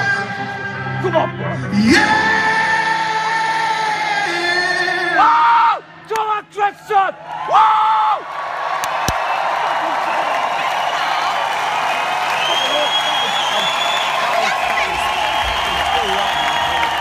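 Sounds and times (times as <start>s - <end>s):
crowd cheering and applauding: 7.2s - 17.0s
shrill whistles: 10.6s - 17.0s.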